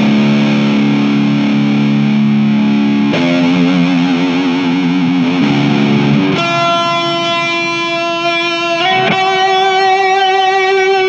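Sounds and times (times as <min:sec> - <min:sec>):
electric guitar sustained notes: 0:00.0 - 0:11.0.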